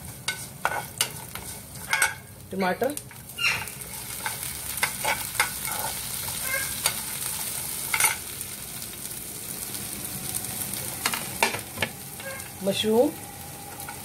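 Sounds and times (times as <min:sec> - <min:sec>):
metal spoon scraping pan: 0:00.0 - 0:08.2
vegetables sizzling in hot oil: 0:00.0 - 0:14.0.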